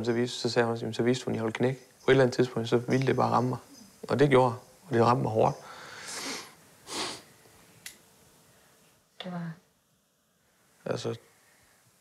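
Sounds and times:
short breath: 5.6s - 7.3s.

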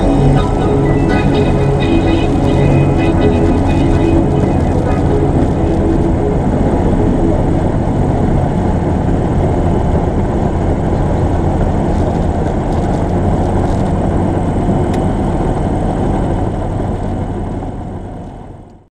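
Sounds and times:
aircraft engine and propeller: 0.0s - 18.8s.

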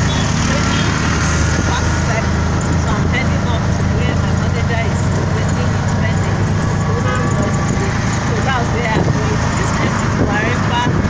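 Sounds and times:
people's voices: 0.0s - 11.0s
vehicle engine and road noise: 0.0s - 11.0s.

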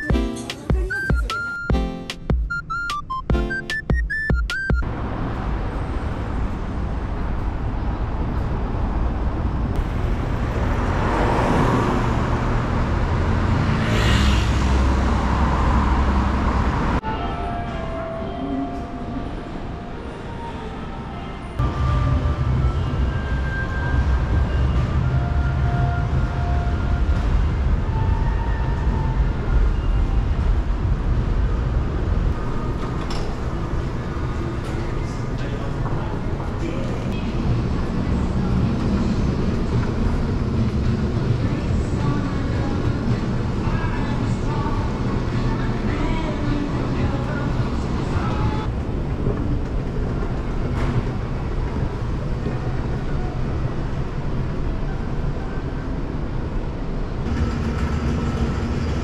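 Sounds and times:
train passing: 4.9s - 59.0s.

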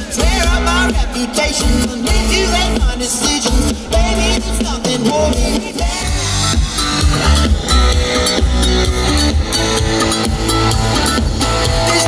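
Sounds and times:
pop-rock band playing: 0.0s - 12.0s.

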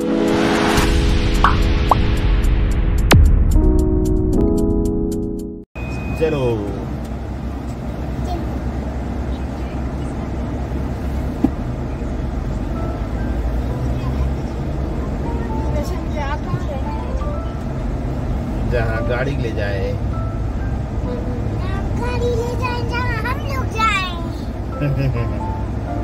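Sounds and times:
car engine and tyre rumble: 5.8s - 26.0s.

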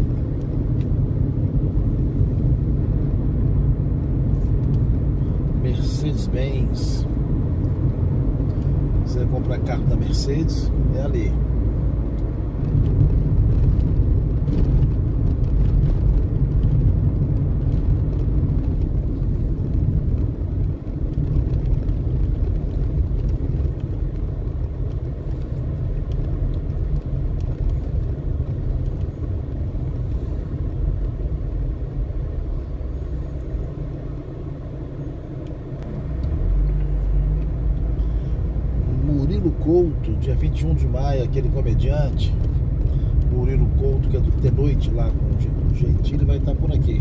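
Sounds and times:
car engine and tyres rumbling: 0.0s - 47.0s.

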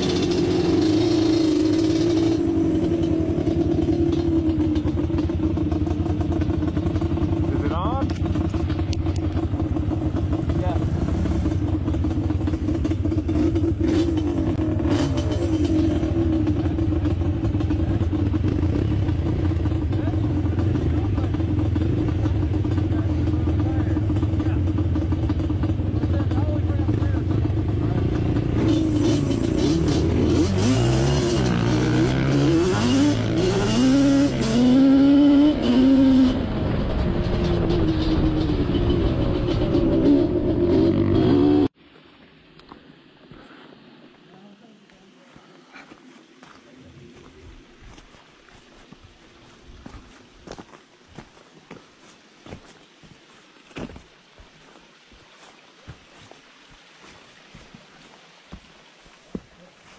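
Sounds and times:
two-stroke engine running: 0.0s - 41.7s.

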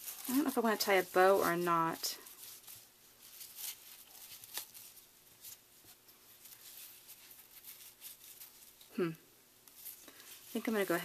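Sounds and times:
ribbon rustling: 0.0s - 11.0s.

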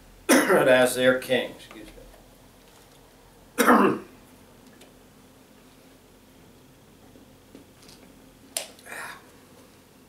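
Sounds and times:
man coughing: 0.3s - 0.7s, 3.6s - 4.1s.

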